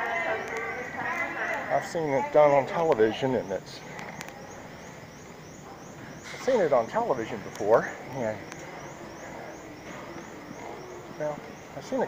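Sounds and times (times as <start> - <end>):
large store background noise: 0.0 - 12.0.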